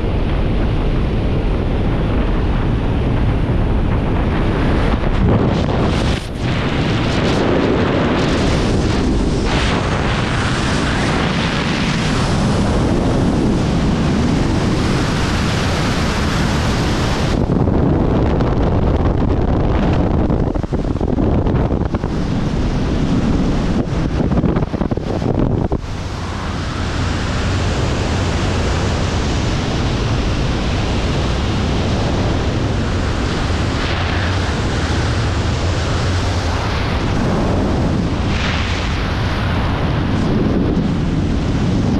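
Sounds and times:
loud wind roar on microphone: 0:00.0 - 0:41.9.

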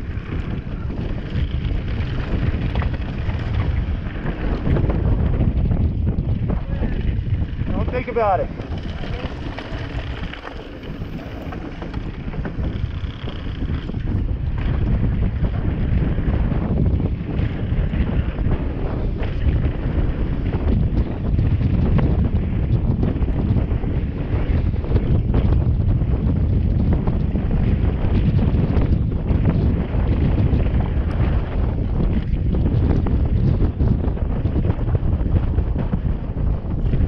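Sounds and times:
bike rattling and knocking: 0:00.0 - 0:37.0
bike tyres rumbling: 0:00.0 - 0:37.0
wind buffeting microphone: 0:00.0 - 0:37.0.

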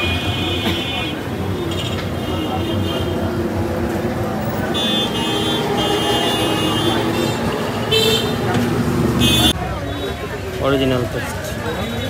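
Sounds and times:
vehicle horns: 0:00.0 - 0:03.6, 0:04.4 - 0:10.2
street traffic: 0:00.0 - 0:12.0
voices: 0:00.0 - 0:12.0.

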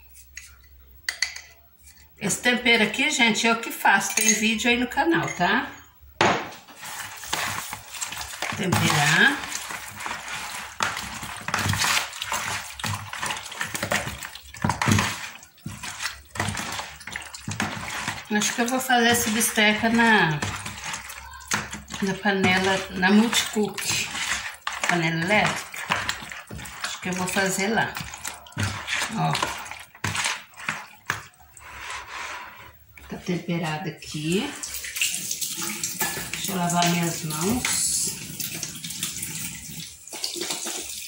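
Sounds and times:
hands squelching raw meat: 0:06.7 - 0:31.8.

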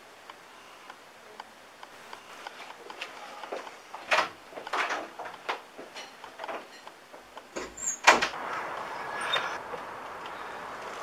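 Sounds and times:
wooden door banging shut: 0:07.5 - 0:08.4.

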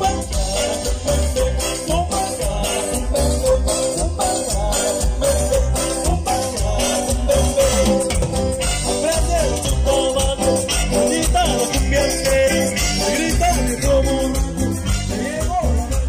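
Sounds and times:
accordion and saxophone melody: 0:00.0 - 0:16.0
drum kit: 0:00.0 - 0:16.0
electric bass: 0:00.0 - 0:16.0.

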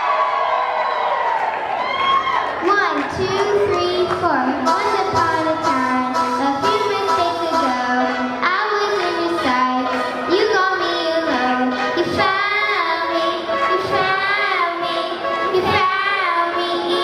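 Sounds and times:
girls singing pop song: 0:02.9 - 0:17.0.

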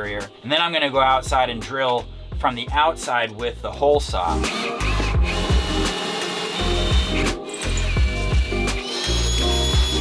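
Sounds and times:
background music with bass line: 0:00.0 - 0:10.0
cordless drill whining: 0:04.2 - 0:10.0.

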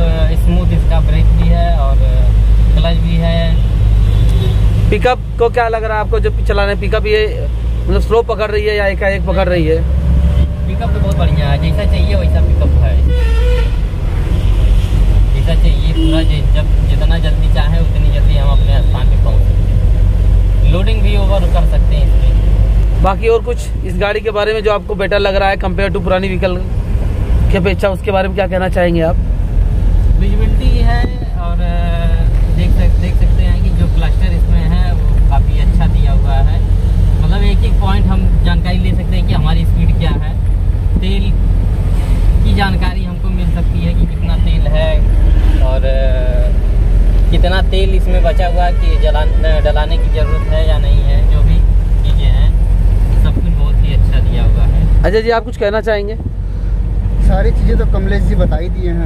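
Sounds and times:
engine and road rumble: 0:00.0 - 0:59.0.

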